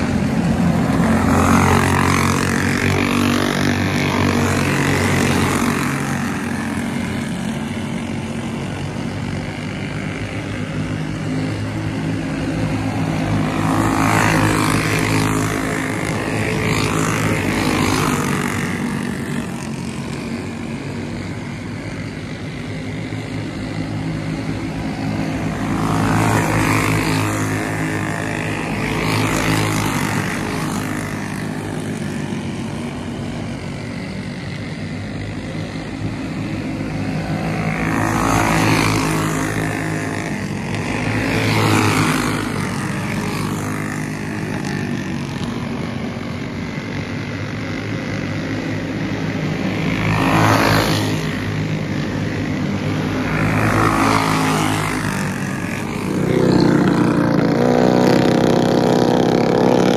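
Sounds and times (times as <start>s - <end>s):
go-kart engines racing: 0.0s - 59.9s.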